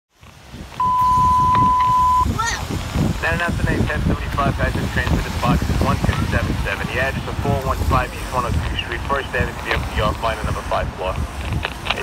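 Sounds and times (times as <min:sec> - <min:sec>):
radio alert tone: 0:00.8 - 0:02.3
radio noise rumble: 0:00.8 - 0:12.0.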